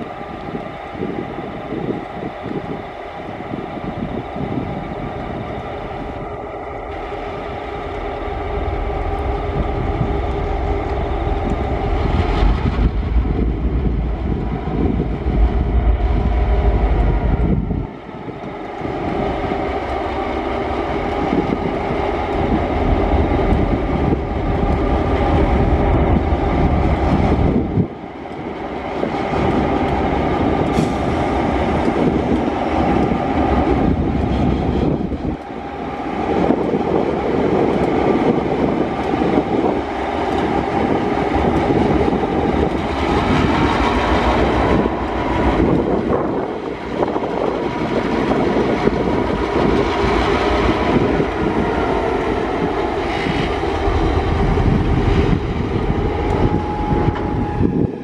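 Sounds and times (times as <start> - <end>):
diesel locomotive engines droning: 0.0 - 58.0.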